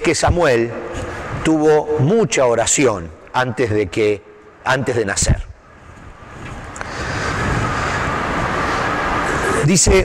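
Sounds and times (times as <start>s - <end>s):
passing vehicle rushing noise: 5.8s - 10.0s.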